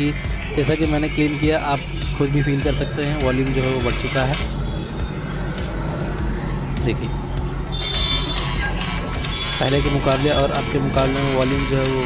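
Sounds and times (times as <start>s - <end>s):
music from a phone speaker: 0.0s - 12.0s.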